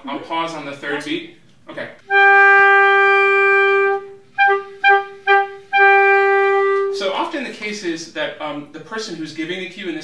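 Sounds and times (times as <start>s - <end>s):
clarinets playing in unison: 2.1s - 7.1s.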